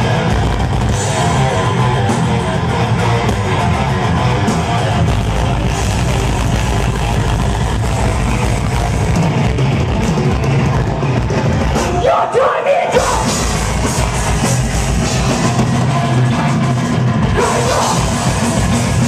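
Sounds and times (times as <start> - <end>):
live metal band playing: 0.0 - 19.0.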